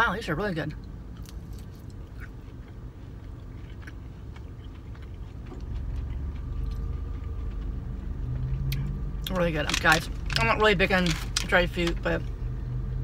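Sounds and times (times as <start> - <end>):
steady low hum: 0.0 - 13.0
person chewing: 1.1 - 12.0
low rumble: 4.5 - 13.0.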